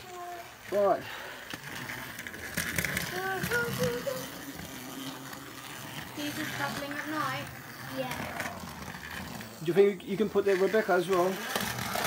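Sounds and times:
toy train motors whirring: 0.0s - 12.0s.

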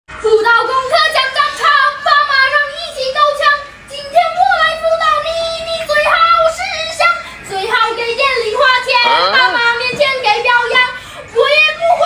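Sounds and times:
child singing: 0.2s - 12.0s.

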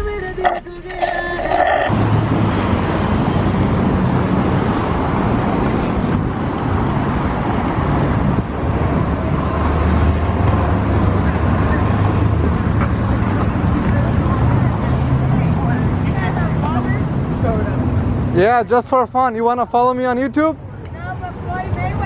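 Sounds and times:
city street traffic rumble: 0.0s - 22.0s.

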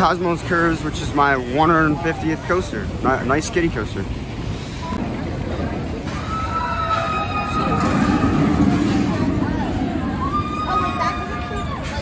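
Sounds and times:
crowd voices: 0.0s - 12.0s
roller coaster running on track: 0.0s - 12.0s.

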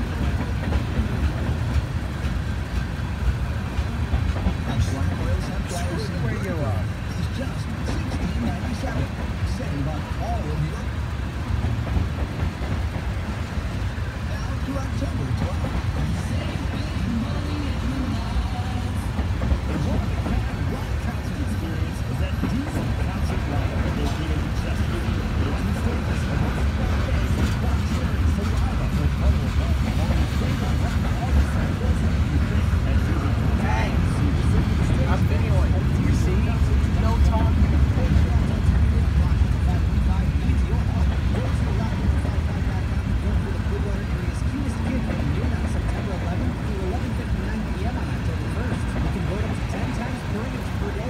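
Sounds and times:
train wheels rumbling on rails: 0.0s - 51.0s.

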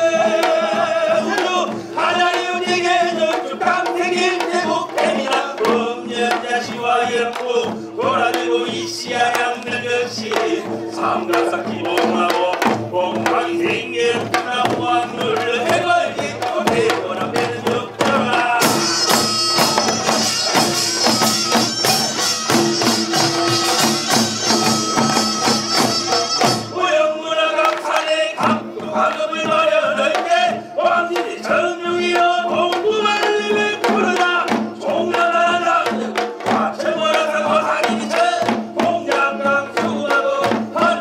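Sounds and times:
dense drumming: 0.0s - 26.8s.

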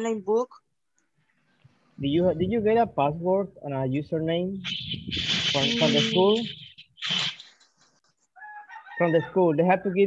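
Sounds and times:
faint pitched tone: 4.6s - 7.2s
hand rubbing microphone: 4.7s - 8.1s.

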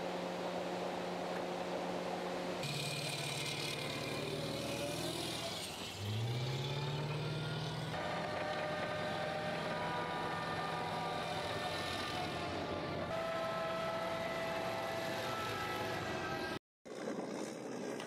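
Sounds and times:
armoured vehicle engine running: 0.0s - 18.0s.

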